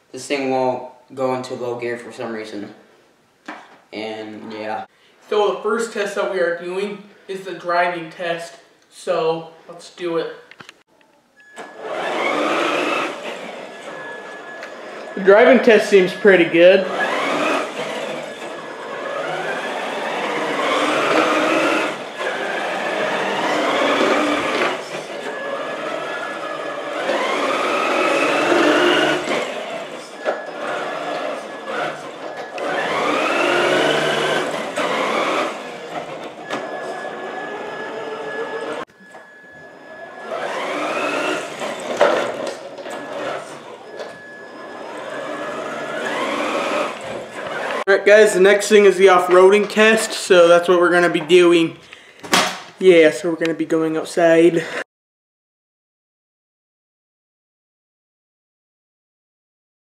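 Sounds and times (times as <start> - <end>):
toy car electric motor whining: 11.6 - 38.9, 39.6 - 47.9.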